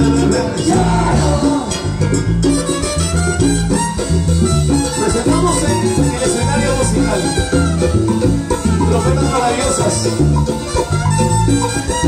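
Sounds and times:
bass line: 0.0 - 12.0
congas and timbales: 0.0 - 12.0
salsa band playing: 0.0 - 12.0.

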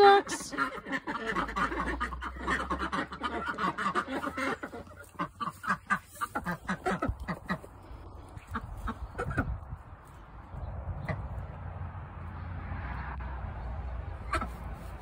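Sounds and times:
ducks quacking: 0.0 - 9.7, 14.2 - 15.0.

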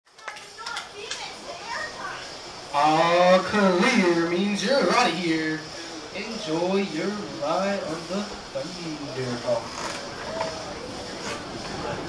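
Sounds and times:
background chatter: 0.1 - 12.0.

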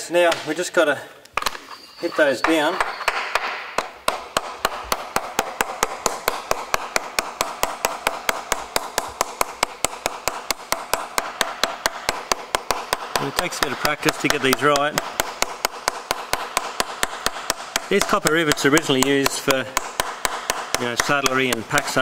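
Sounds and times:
hammer tapping rivets: 1.4 - 22.0.

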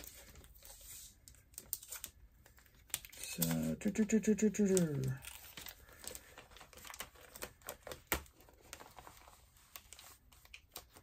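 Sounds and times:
packaging rustling and crinkling: 4.7 - 11.0.

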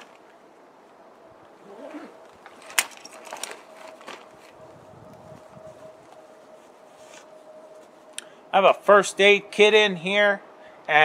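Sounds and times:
gear rustling in backpack: 1.5 - 8.1.

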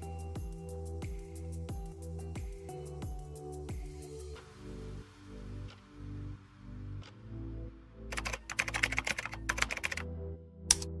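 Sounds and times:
background music: 0.0 - 11.0
keyboard typing: 8.1 - 10.0.

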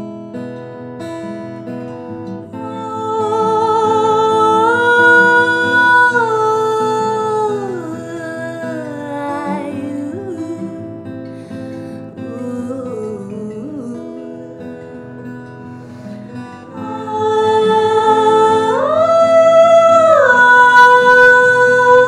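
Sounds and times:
acoustic guitar: 0.0 - 22.0
woman singing: 2.2 - 22.0.

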